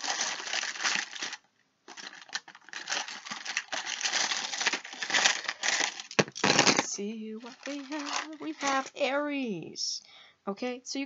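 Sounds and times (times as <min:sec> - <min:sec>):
charms and stones rattling: 0:00.0 - 0:09.0.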